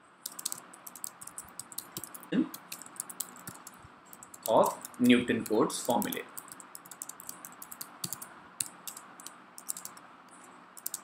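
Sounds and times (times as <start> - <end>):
computer keyboard typing: 0.2 - 10.0, 10.8 - 11.0
person speaking: 0.5 - 3.6, 4.3 - 6.5.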